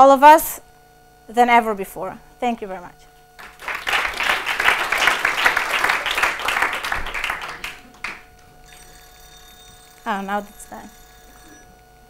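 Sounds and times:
small crowd clapping: 3.4 - 9.4.

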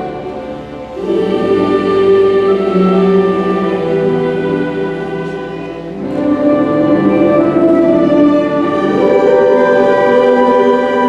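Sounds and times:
string orchestra playing chords: 0.0 - 11.0.

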